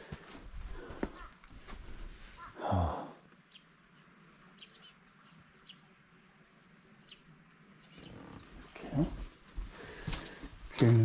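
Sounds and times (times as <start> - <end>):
small birds chirping: 0.1 - 1.6, 2.2 - 11.0.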